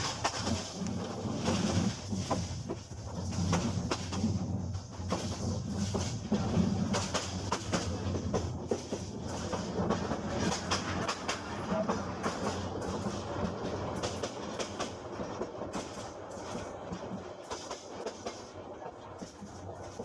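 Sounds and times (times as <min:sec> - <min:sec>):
train running on rails: 0:00.0 - 0:20.0
wheels clacking over rail joints: 0:00.0 - 0:20.0.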